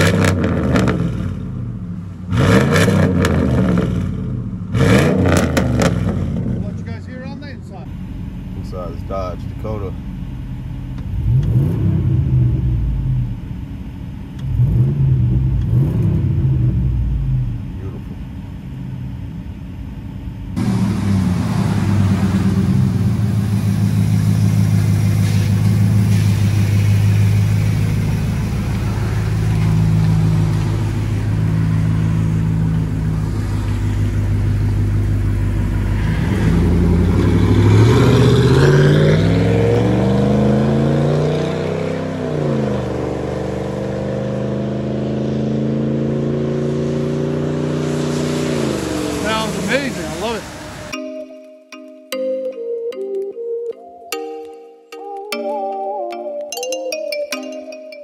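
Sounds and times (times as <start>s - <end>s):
vehicle accelerating away: 0.0s - 7.1s, 10.9s - 13.4s, 14.4s - 18.1s, 20.5s - 51.0s
engine revving: 0.0s - 7.9s, 10.9s - 13.5s, 14.4s - 18.2s, 20.5s - 51.0s
engine idling with low drone: 6.2s - 35.9s.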